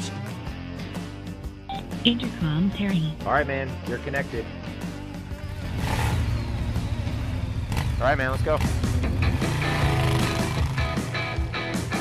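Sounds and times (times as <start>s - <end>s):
background music: 0.0s - 12.0s
motorcycle engines running: 4.0s - 12.0s.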